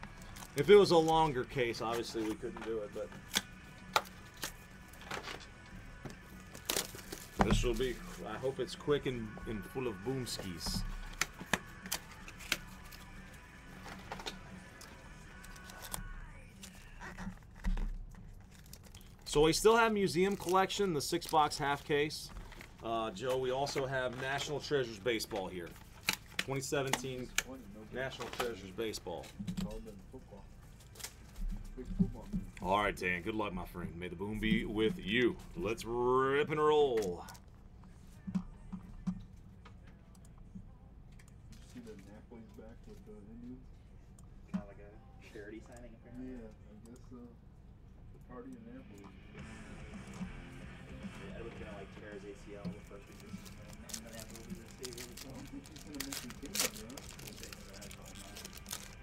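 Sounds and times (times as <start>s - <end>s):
faint background music: 0.0s - 59.0s
foil wrapper crinkling: 6.4s - 8.4s, 14.8s - 22.8s, 52.5s - 59.0s.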